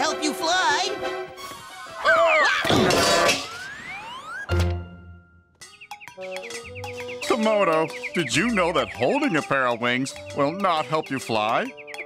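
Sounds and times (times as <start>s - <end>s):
music: 0.0s - 3.6s, 4.4s - 12.0s
rising whistle: 3.4s - 4.5s.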